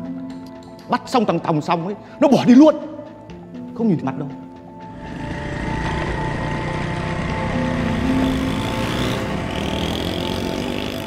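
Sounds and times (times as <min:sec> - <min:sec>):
small motorcycle engine running: 0:04.9 - 0:11.0.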